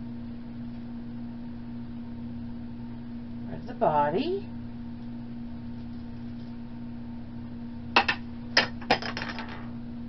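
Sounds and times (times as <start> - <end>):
small plastic piece bouncing: 8.0 - 9.6.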